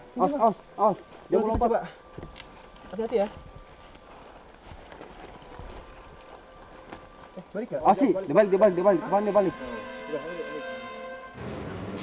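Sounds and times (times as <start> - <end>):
rustling undergrowth: 0.0 - 9.8.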